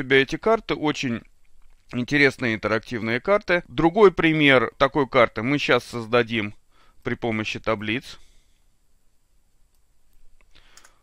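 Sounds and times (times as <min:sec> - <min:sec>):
low room hiss: 0:00.0 - 0:11.0
faint computer clicks: 0:09.7 - 0:11.0.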